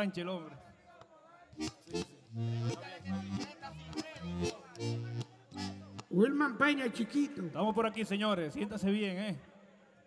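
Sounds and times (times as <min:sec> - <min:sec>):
merengue band playing: 0:01.6 - 0:06.4.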